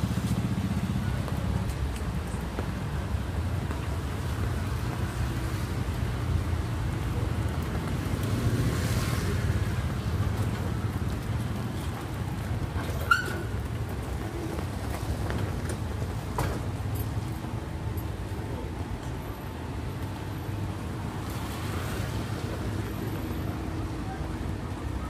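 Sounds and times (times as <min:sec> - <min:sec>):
city street traffic rumble: 0:00.0 - 0:25.0
motorbikes and cars humming: 0:00.0 - 0:25.0.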